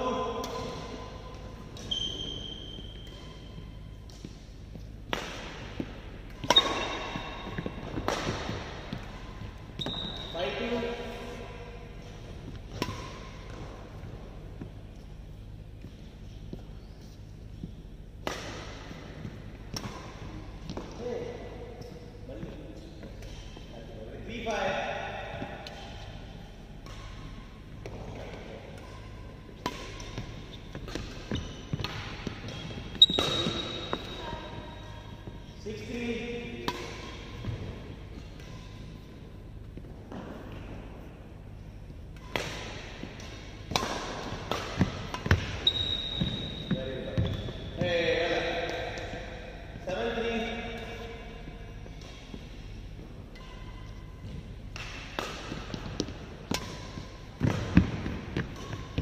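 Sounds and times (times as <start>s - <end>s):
racket hitting shuttlecock: 0.3s - 15.2s, 18.2s - 23.6s, 24.9s - 47.8s, 50.1s - 59.0s.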